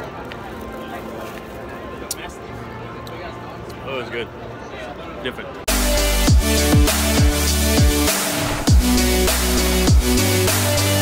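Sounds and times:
people chattering on street: 0:00.0 - 0:05.7.

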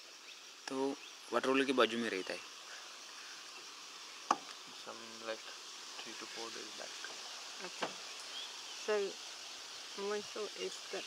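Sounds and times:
insects calling: 0:00.0 - 0:11.0.

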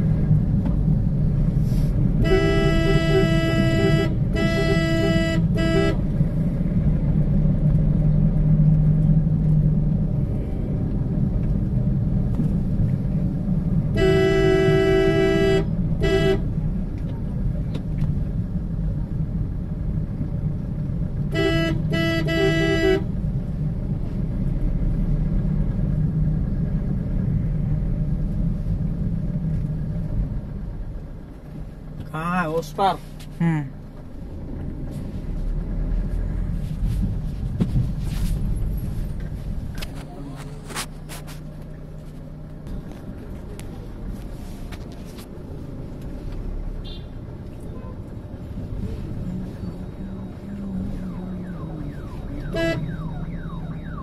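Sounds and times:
vehicle engine and road noise: 0:00.0 - 0:54.0
two-note vehicle horn blasts: 0:02.2 - 0:06.0, 0:13.9 - 0:16.5, 0:21.3 - 0:23.1, 0:52.4 - 0:53.0.

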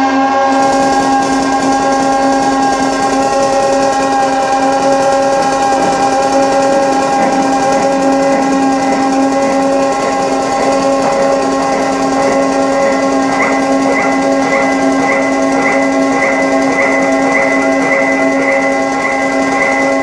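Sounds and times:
electronic drone of held tones: 0:00.0 - 0:20.0
fast grainy rattling: 0:00.5 - 0:20.0.

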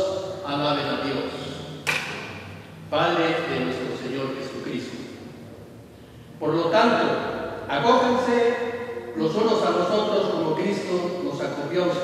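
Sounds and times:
man reading aloud: 0:00.0 - 0:01.8, 0:02.9 - 0:05.3, 0:06.4 - 0:12.0.

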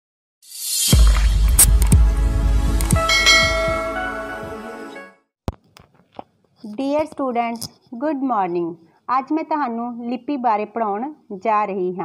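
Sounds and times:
bell-like chiming tones: 0:03.0 - 0:04.5.

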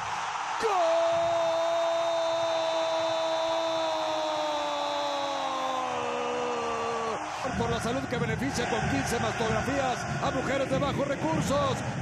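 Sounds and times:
stadium crowd noise: 0:00.0 - 0:12.0
commentator's long held goal shout: 0:00.6 - 0:11.9.

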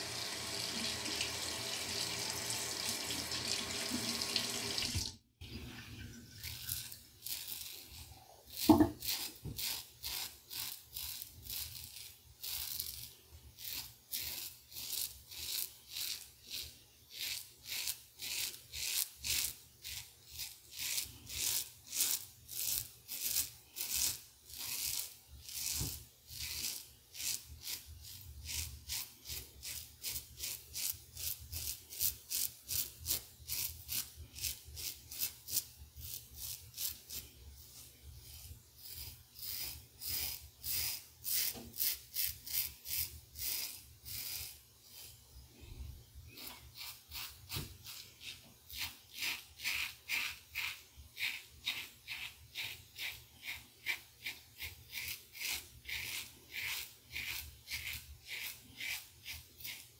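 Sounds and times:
razor scraping stubble: 0:06.4 - 0:45.2, 0:46.3 - 0:59.9.

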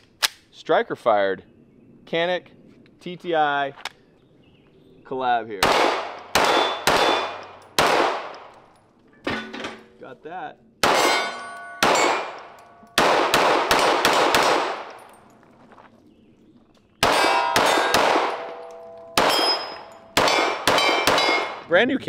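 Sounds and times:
pistol shots: 0:05.6 - 0:08.6, 0:10.8 - 0:15.1, 0:17.0 - 0:21.7
metallic ding of steel targets: 0:10.9 - 0:13.0, 0:17.1 - 0:21.6.

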